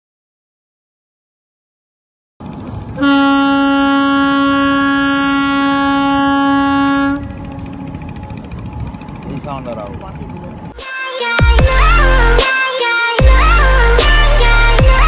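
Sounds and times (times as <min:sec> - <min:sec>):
riverside background noise: 0:02.4 - 0:10.9
steamer horn blast: 0:03.0 - 0:08.0.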